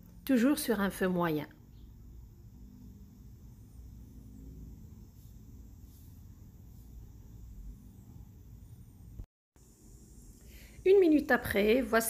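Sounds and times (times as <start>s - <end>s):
soft scrapes: 5.1s - 7.2s.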